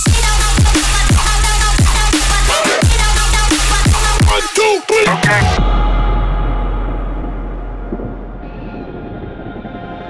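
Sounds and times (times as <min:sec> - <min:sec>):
deep sub-bass rumble: 0:05.6 - 0:10.0.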